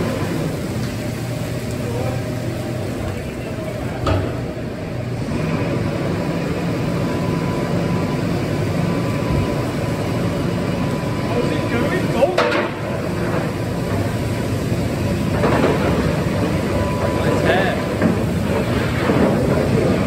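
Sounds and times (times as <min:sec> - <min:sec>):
tractor engine running: 0:00.0 - 0:20.0.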